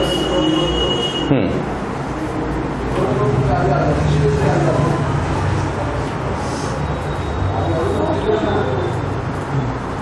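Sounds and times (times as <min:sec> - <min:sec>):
marker squeaking on whiteboard: 0:06.0 - 0:10.0.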